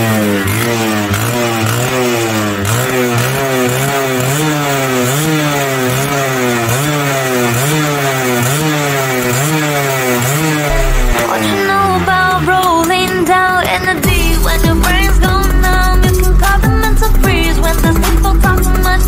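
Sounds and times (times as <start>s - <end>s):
two-stroke engine revving: 0.0s - 19.0s.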